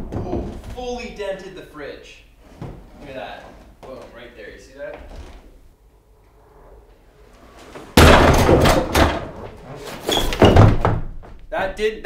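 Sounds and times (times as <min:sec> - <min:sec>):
heavy thump: 0:07.9 - 0:09.5
door bang: 0:07.9 - 0:09.6.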